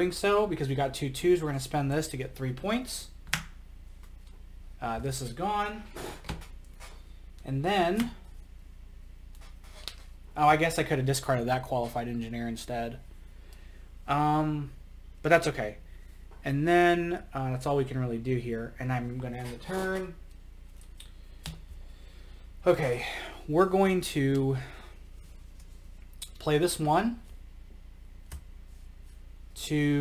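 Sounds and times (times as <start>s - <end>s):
low electrical hum: 0.0s - 30.0s
cards rustling on tabletop: 9.4s - 10.1s.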